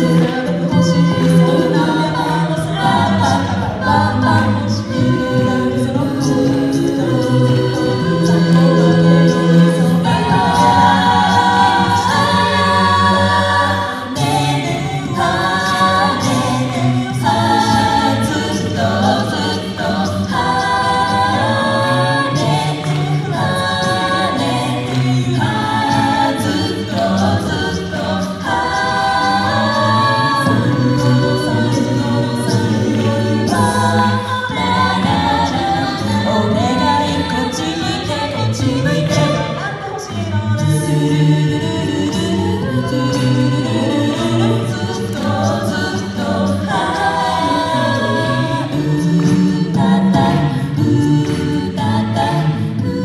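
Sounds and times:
a cappella group singing: 0.0s - 53.0s
vocal percussion: 0.0s - 53.0s.

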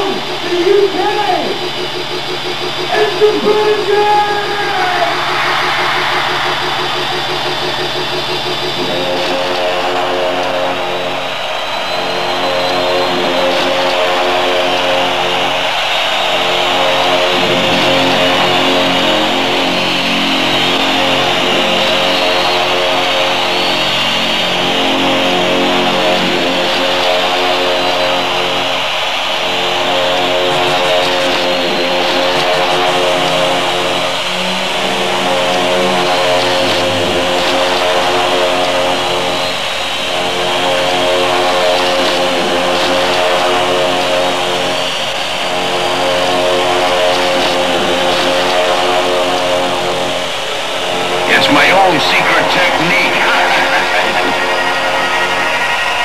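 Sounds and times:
concert crowd noise: 0.0s - 56.0s
synthesizer drone: 0.0s - 56.0s.

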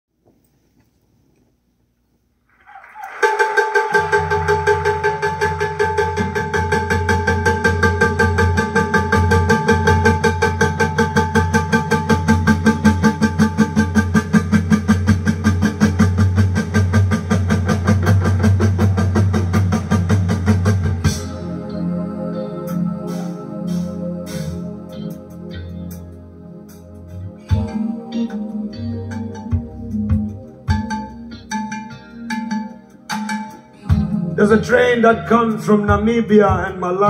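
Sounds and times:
loud recorded music: 3.1s - 37.0s
fast train-like rhythmic pulse: 3.2s - 21.6s.

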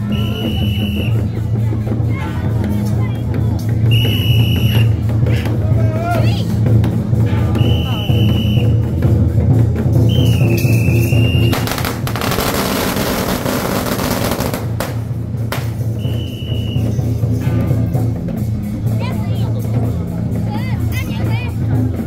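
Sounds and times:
firecrackers crackling: 10.2s - 16.8s.

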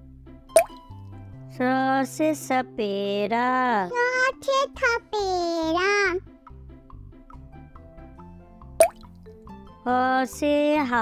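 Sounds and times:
soft children's music: 0.0s - 11.0s
rising plop sound effect: 0.6s - 0.9s, 8.8s - 9.1s.

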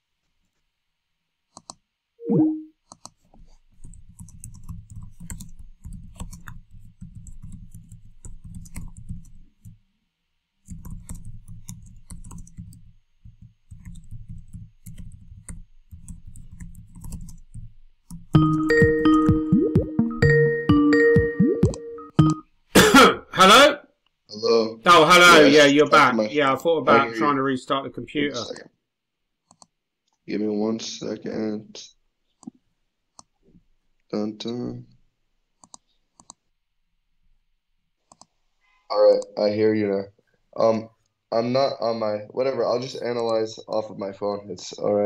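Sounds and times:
brief falling tone: 2.2s - 2.7s
ringtone note: 2.2s - 2.7s, 18.4s - 22.4s
typing on keyboard: 2.9s - 9.8s, 10.6s - 19.9s
person clearing throat: 22.8s - 23.4s.

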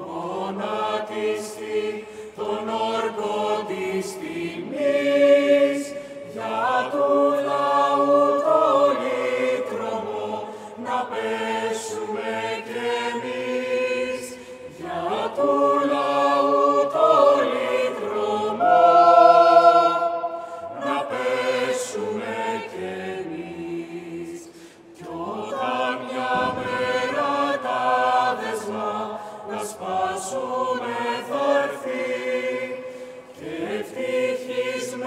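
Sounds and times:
choir singing a cappella: 0.0s - 35.0s.

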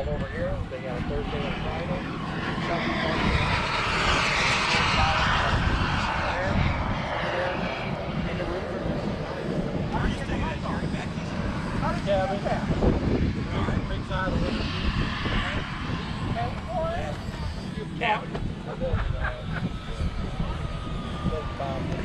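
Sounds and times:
jet turbine engine hiss: 0.0s - 22.0s
low rumble: 0.0s - 22.0s.

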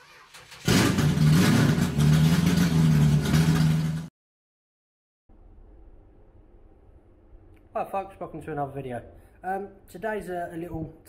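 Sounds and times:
engine starter clicks: 0.0s - 2.0s
car engine running: 0.5s - 4.1s.

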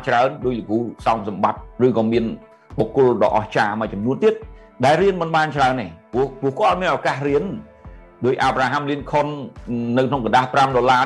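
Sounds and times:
faint background music: 0.0s - 11.0s
man speaking: 0.0s - 11.0s.

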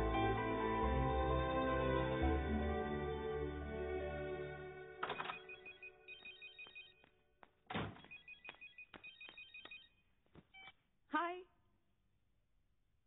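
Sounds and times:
mobile phone ringing: 5.0s - 7.1s, 8.0s - 10.0s.

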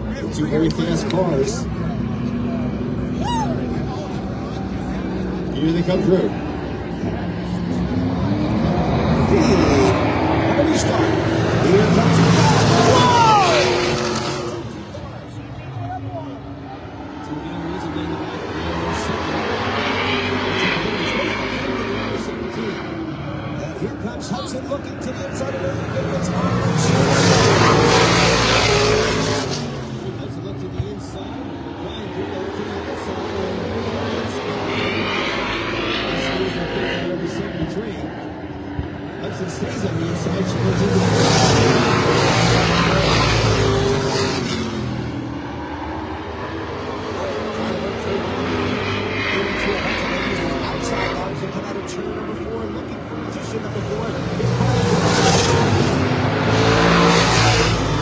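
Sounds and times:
stock car engines racing: 0.0s - 58.0s.

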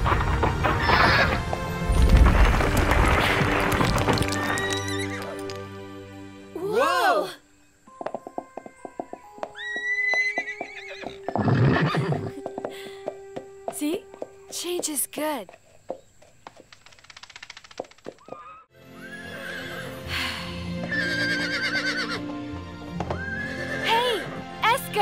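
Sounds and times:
rocks crashing down: 0.0s - 5.6s
horse whinny: 9.6s - 12.4s, 18.4s - 20.0s, 20.8s - 22.3s, 23.1s - 24.4s
plucked cartoon music: 18.7s - 25.0s.

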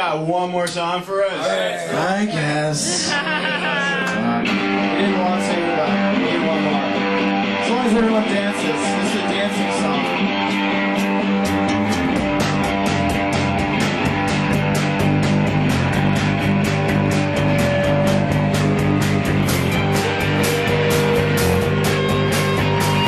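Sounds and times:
bass guitar: 1.8s - 23.0s
electric guitar: 2.8s - 23.0s
drums with cymbal strokes: 10.5s - 23.0s.

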